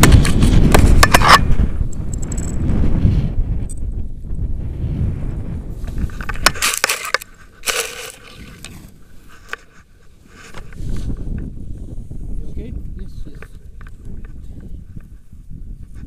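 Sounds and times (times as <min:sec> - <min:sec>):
wind buffeting microphone: 0:00.0 - 0:16.0
harness scraping on dry grass: 0:05.7 - 0:11.5.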